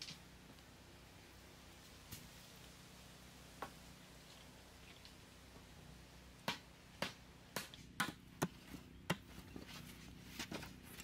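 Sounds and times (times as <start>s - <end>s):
machete chopping wood: 6.4s - 9.3s.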